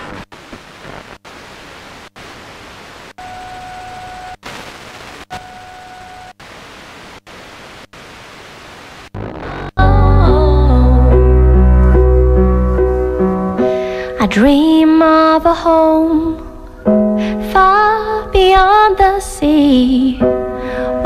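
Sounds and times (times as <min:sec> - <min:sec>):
radio static hiss: 0:00.0 - 0:03.4, 0:04.3 - 0:10.0.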